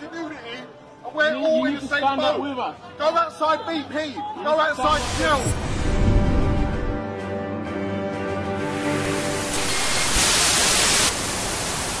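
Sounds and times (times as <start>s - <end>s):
television static hiss: 9.1s - 12.0s.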